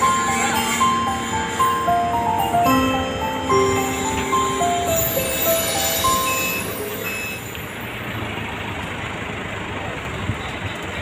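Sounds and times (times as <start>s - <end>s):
high music notes: 0.0s - 8.2s
forklift engine running: 0.0s - 11.0s.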